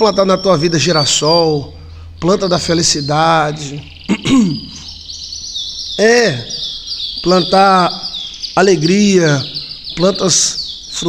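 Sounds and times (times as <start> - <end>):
man's voice: 0.0 - 4.8, 6.0 - 6.6, 7.2 - 11.0
bird chirping and trilling: 0.0 - 11.0.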